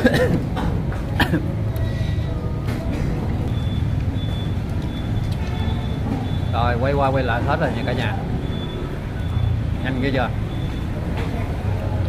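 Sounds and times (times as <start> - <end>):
faint high-pitched beeps: 3.4 - 7.0, 7.6 - 11.1.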